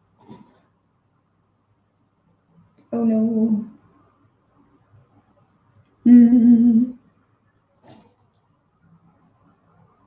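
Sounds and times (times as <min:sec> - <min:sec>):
woman humming: 0:06.0 - 0:07.0.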